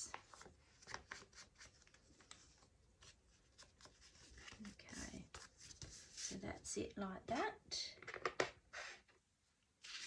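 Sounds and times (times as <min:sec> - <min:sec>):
paper rustling: 0:00.0 - 0:06.4, 0:09.8 - 0:10.0.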